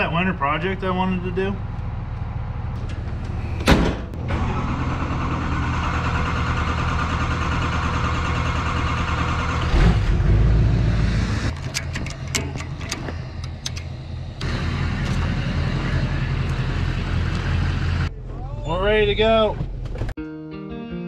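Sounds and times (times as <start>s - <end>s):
pickup truck engine running: 4.1s - 18.3s.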